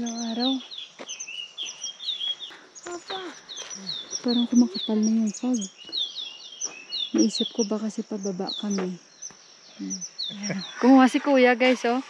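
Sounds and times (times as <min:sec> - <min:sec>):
small birds calling: 0:00.0 - 0:12.0.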